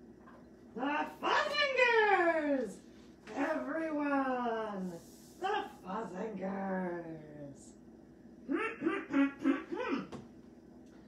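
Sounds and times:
character voice nonsense syllables: 8.5s - 10.2s.

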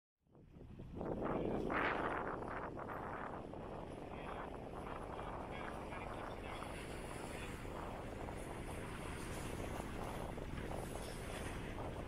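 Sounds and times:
wind rumbling on microphone: 0.2s - 12.0s.

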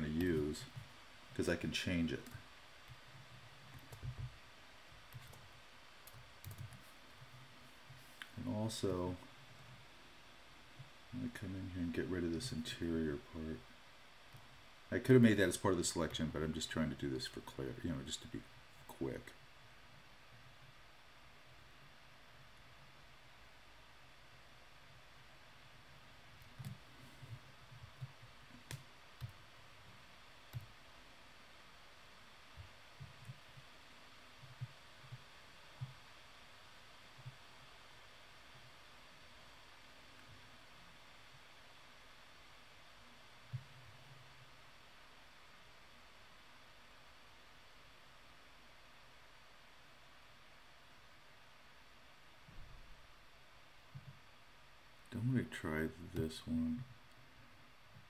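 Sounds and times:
faint steady hiss: 0.0s - 58.0s.

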